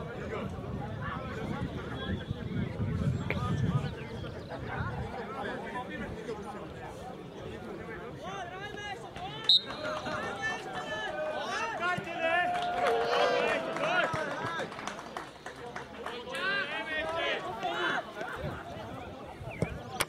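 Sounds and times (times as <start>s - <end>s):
voices calling out and talking: 0.0s - 20.0s.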